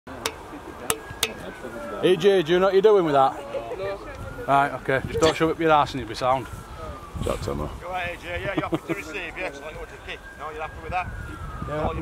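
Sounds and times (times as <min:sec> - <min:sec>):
distant voices: 0:00.1 - 0:12.0.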